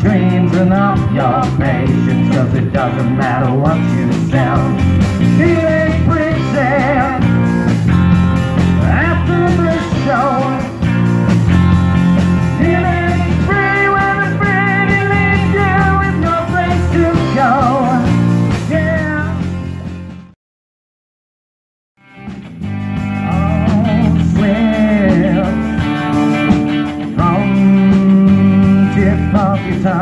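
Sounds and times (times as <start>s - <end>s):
pitch-bending guitar lead line: 0.0s - 20.3s, 22.0s - 30.0s
live rock band playing: 0.0s - 20.4s, 22.0s - 30.0s.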